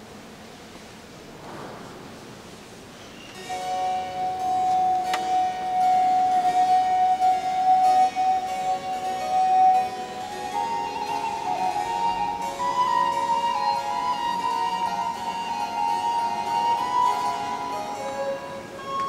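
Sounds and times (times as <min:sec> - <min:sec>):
harpsichord accompaniment: 0:03.2 - 0:19.0
flute playing: 0:03.4 - 0:19.0.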